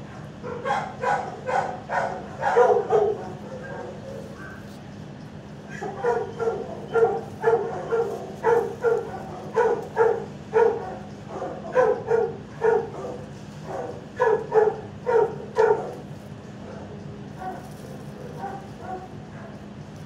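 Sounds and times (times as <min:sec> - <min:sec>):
dog barking: 0:00.1 - 0:04.6, 0:05.7 - 0:16.0, 0:16.7 - 0:19.7.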